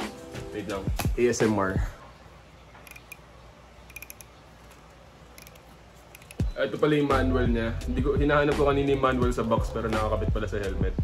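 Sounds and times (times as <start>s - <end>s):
helmet dial clicking: 2.8s - 6.6s.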